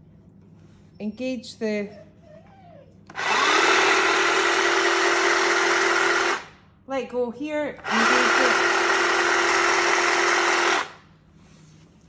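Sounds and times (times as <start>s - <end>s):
hedge trimmer motor whirring: 3.1s - 6.5s, 7.8s - 11.0s.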